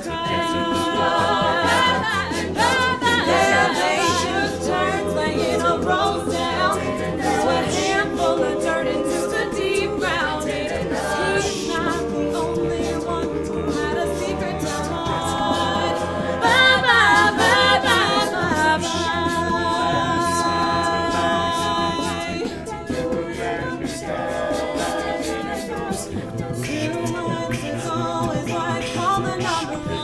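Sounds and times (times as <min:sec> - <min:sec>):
a cappella group singing harmony: 0:00.0 - 0:30.0.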